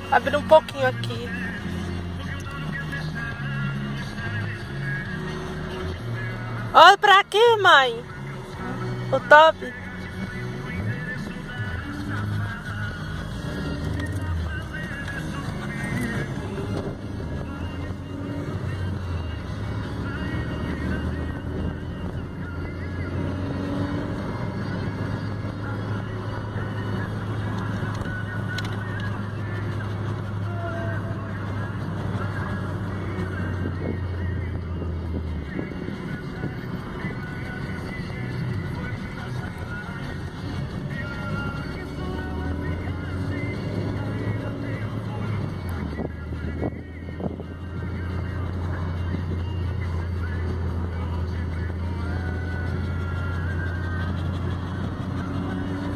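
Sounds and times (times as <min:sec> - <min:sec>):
car road and engine noise: 0:00.0 - 0:55.9.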